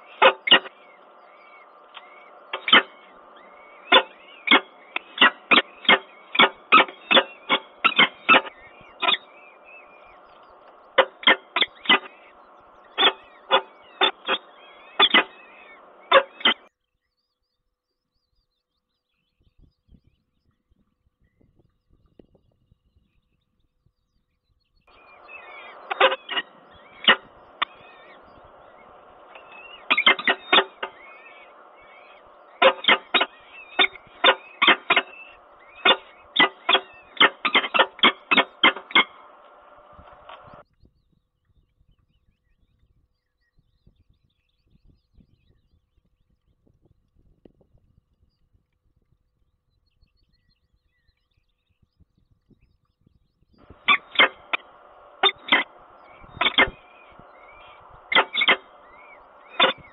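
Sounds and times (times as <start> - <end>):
sharp falcon calls: 0.0 - 16.7, 24.9 - 40.6, 53.7 - 59.9
steady background hum: 0.0 - 16.7, 23.7 - 40.7, 53.5 - 59.9
faint high chirping: 0.0 - 46.8, 49.3 - 59.9.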